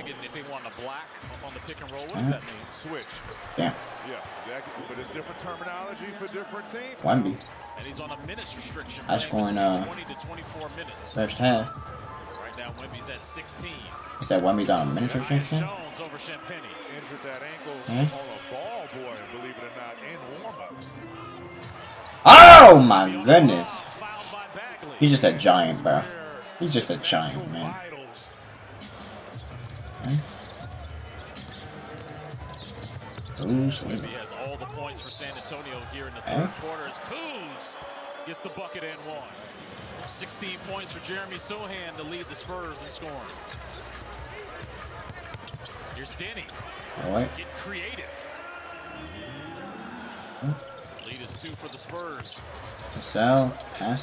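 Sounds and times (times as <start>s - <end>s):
commentator talking: 0.0s - 4.0s, 4.6s - 28.4s, 30.0s - 30.4s, 33.4s - 39.3s, 46.1s - 54.0s
arena noise: 0.0s - 54.0s
basketball bouncing on court: 43.3s - 47.0s, 50.5s - 53.8s.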